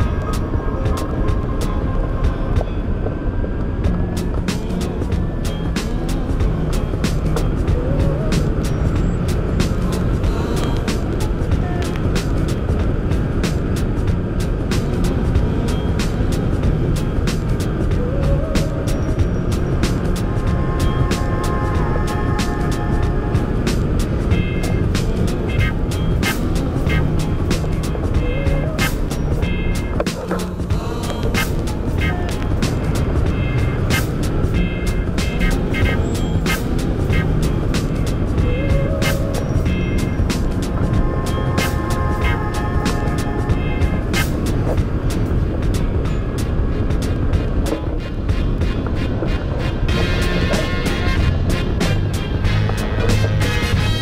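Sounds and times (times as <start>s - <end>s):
wind rushing over camera: 0.0s - 49.9s
music: 0.0s - 54.0s.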